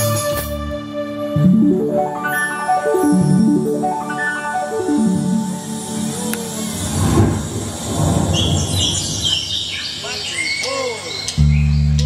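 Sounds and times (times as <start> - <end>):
synthesizer chirping bird calls: 1.5 - 12.0
synthesizer thunder rumble: 6.6 - 9.8.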